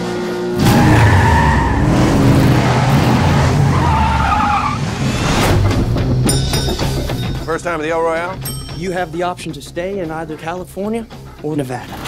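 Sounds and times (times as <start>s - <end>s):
tyres squealing: 2.6s - 5.1s.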